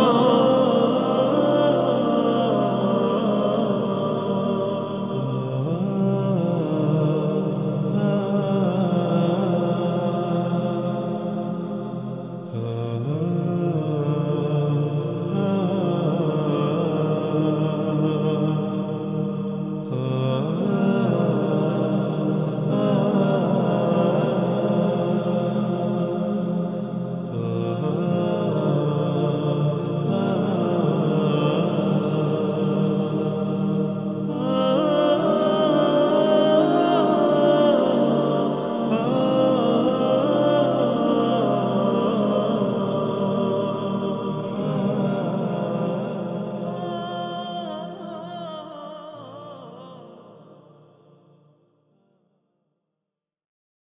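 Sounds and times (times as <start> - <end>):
chant-style vocal music: 0.0 - 52.2.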